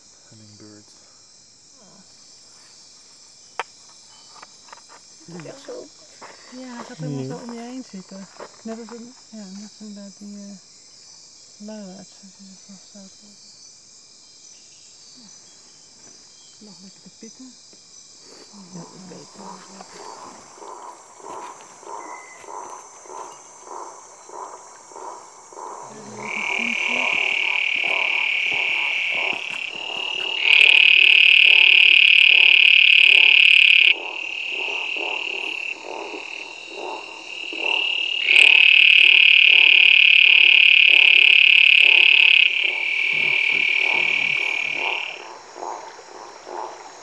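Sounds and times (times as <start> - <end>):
low pulsing call: 18.6 - 47.0
toad high trills: 25.9 - 45.3.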